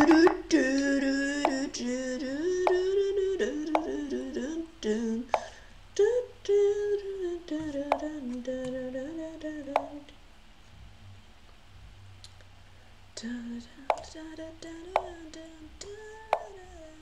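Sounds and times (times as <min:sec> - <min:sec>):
computer mouse click: 0:13.9 - 0:14.1.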